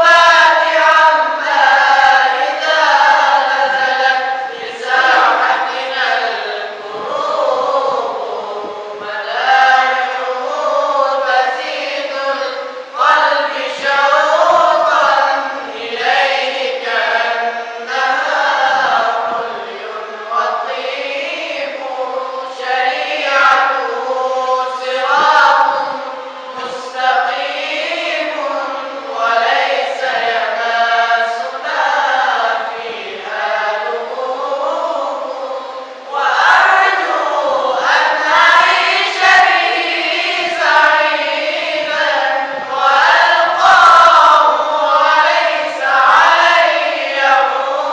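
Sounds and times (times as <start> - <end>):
male voices chanting in unison: 0.0 - 47.9.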